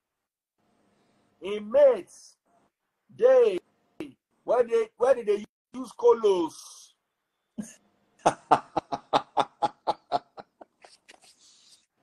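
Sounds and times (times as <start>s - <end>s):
man laughing out loud: 7.6s - 10.9s.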